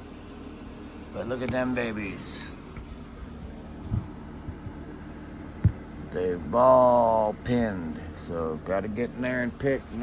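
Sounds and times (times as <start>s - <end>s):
low background hum: 0.0s - 10.0s
dull thumps: 2.7s - 6.0s.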